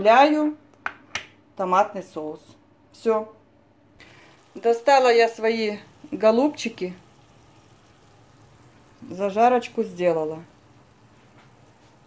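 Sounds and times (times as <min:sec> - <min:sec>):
faint kitchen background noise: 0:00.0 - 0:12.0.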